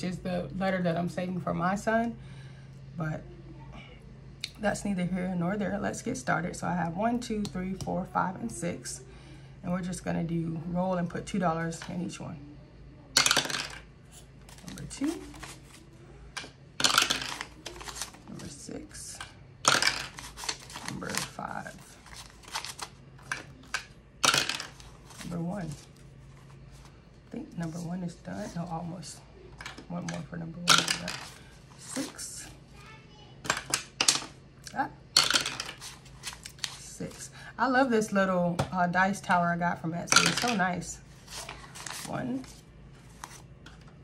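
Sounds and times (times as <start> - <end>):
die clattering down dice tower: 13.2 - 13.8, 16.8 - 17.6, 19.6 - 20.2, 24.2 - 24.8
paper bills being handled: 14.5 - 15.9, 17.2 - 18.6, 19.9 - 23.7
bank notes rustling: 16.9 - 23.7
die clattering through dice tower: 19.7 - 20.2, 24.2 - 24.8.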